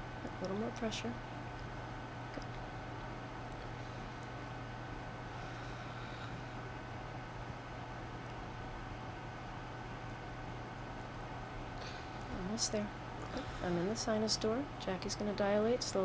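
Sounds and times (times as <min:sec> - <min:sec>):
equipment humming and hissing: 0:00.0 - 0:16.0.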